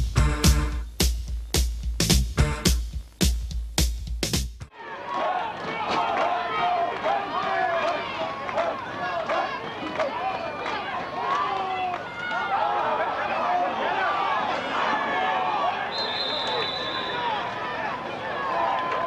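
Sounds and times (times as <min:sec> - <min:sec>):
crowd shouting and cheering: 0:04.7 - 0:19.0.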